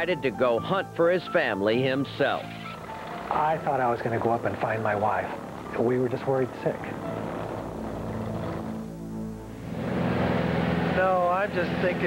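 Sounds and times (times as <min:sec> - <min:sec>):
propeller plane engine humming: 0:02.5 - 0:12.0.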